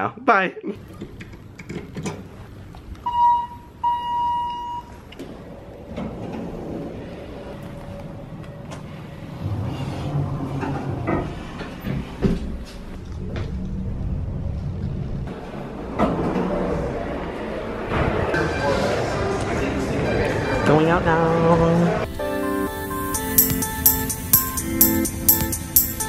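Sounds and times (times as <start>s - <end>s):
elevator humming low: 0.8s - 21.1s
elevator doors sliding: 0.8s - 22.2s
elevator chime dings: 3.0s - 5.1s.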